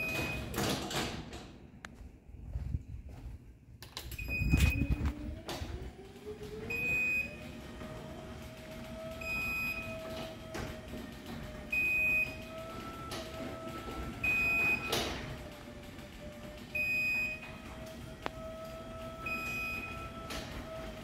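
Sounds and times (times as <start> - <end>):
garage door motor whine: 0.0 - 1.7, 3.9 - 21.0.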